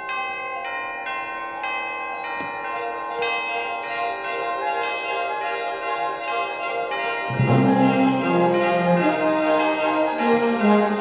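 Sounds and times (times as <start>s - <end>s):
ringing bell tones: 0.0s - 11.0s
sustained wind chords: 7.3s - 11.0s.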